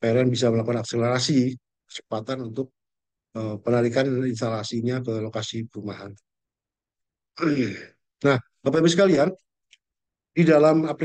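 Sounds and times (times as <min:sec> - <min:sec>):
man sighing: 0:07.4 - 0:07.9.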